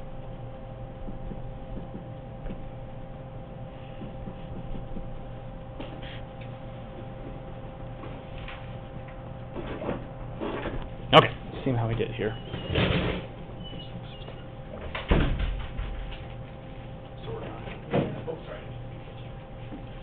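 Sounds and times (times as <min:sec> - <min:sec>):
electrical hum: 0:00.0 - 0:20.0.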